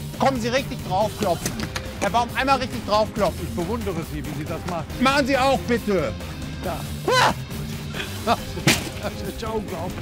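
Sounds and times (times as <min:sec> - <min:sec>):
background music: 0:00.0 - 0:10.0
person shouting: 0:07.0 - 0:07.4.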